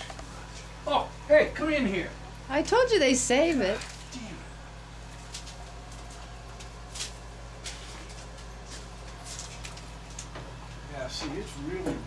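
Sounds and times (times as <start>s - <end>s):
steady low hum: 0.0s - 12.0s
puppies scratching on floor: 5.1s - 10.4s.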